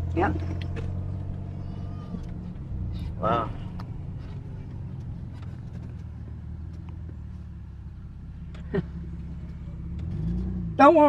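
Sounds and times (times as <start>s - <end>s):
car engine rumble and road noise: 0.0s - 11.0s.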